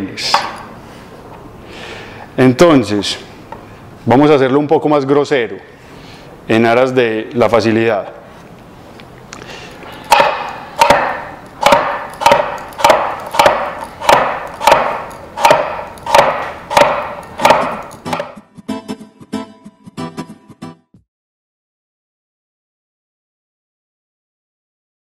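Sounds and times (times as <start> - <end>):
knife chopping on wooden board: 10.1 - 18.4
plucked guitar music: 18.2 - 20.9.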